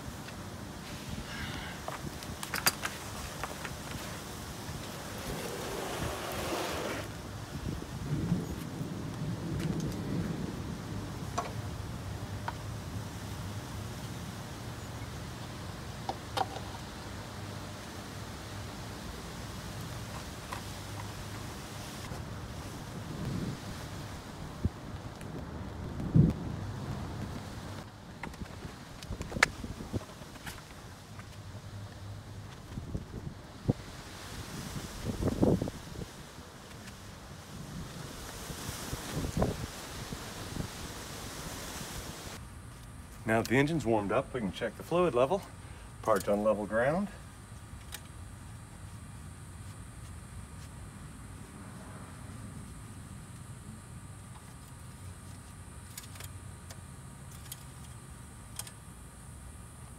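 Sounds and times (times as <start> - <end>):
wind noise: 0.0 - 42.4
rain: 0.0 - 42.5.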